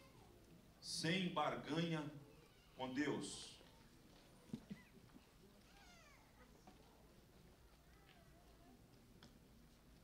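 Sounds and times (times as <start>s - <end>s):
faint high cry: 3.6s - 6.8s.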